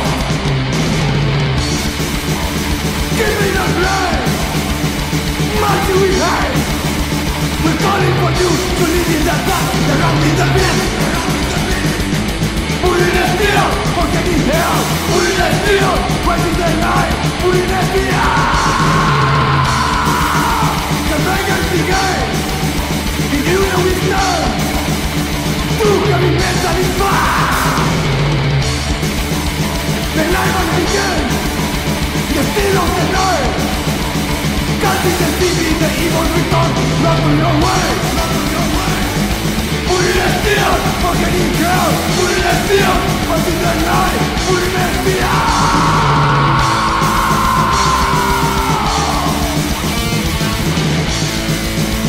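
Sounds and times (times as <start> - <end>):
shouted vocals: 0.0 - 1.0, 3.1 - 6.8, 7.6 - 28.6, 30.0 - 50.8
distorted electric guitars: 0.0 - 52.0
drums: 0.0 - 52.0
thrash metal band playing: 0.0 - 52.0.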